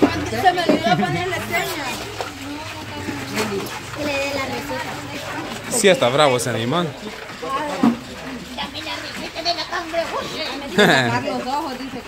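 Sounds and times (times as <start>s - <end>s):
people talking over each other: 0.0s - 12.0s.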